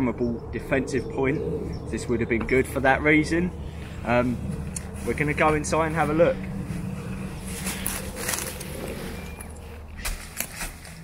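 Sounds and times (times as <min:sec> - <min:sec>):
dry leaves brushing: 0:03.7 - 0:11.0
clothing rustling: 0:06.6 - 0:11.0.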